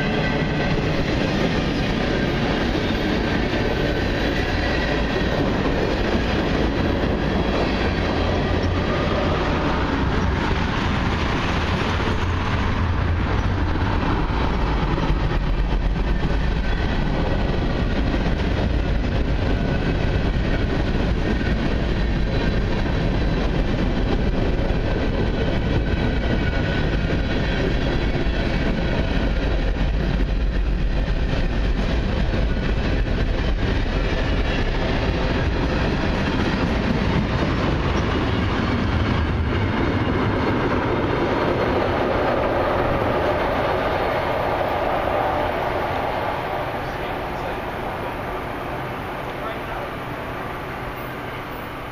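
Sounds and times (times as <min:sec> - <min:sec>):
train wheels rumbling on rail: 0:00.0 - 0:51.9.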